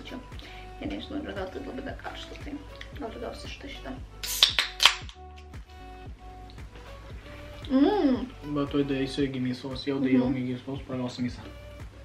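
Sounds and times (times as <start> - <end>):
background music: 0.0 - 12.0
hiss of escaping gas: 4.2 - 4.7.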